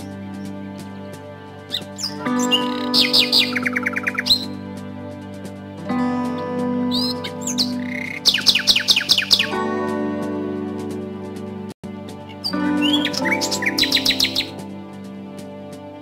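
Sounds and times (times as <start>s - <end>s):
soft instrumental music: 0.0s - 16.0s
bird chirps: 1.7s - 4.6s, 6.9s - 9.6s, 12.4s - 14.6s.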